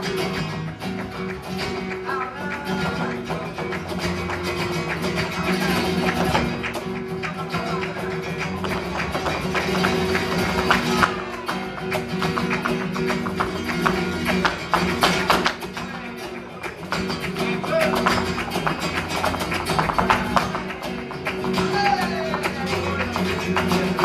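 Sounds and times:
flamenco guitars playing chords: 0.0s - 24.0s
heeled shoes tapping on stage: 0.0s - 24.0s.

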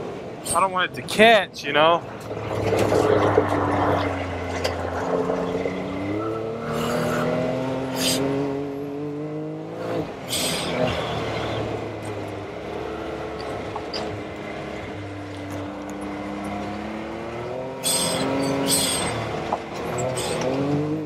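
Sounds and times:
engine revving under throttle: 2.2s - 21.0s.

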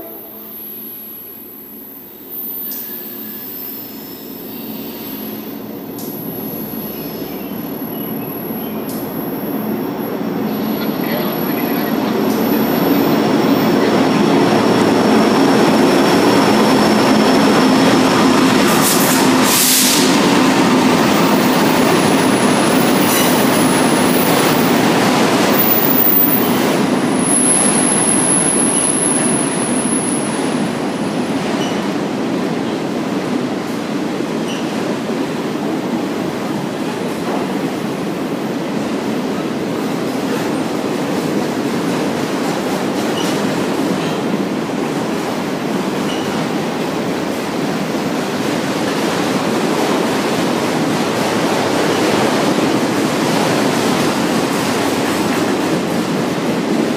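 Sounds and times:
diesel locomotive engine hum: 0.0s - 34.4s
steel wheels rumbling on rail: 0.0s - 56.9s.

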